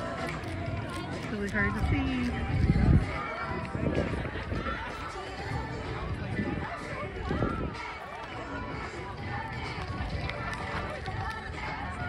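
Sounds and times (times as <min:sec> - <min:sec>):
crowd chatter: 0:00.0 - 0:12.0
steady low rumble: 0:00.0 - 0:12.0.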